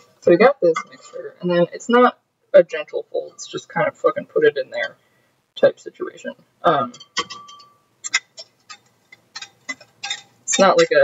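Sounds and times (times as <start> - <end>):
utensils clinking on glass bowl: 6.9 - 11.0.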